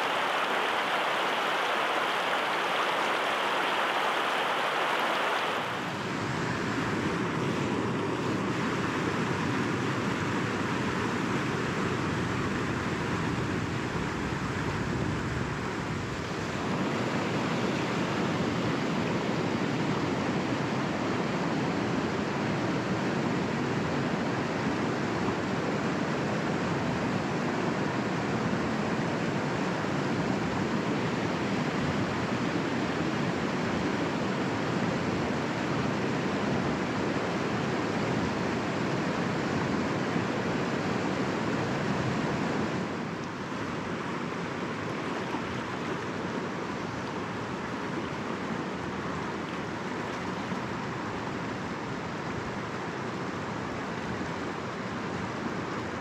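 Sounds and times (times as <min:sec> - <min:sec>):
river rapids rushing over rocks: 0:00.0 - 0:06.4.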